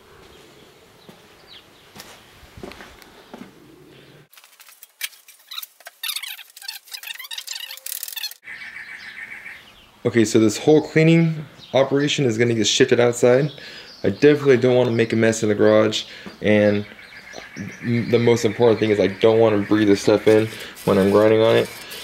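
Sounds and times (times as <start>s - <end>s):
birds chirping: 0.0s - 2.0s, 5.5s - 22.0s.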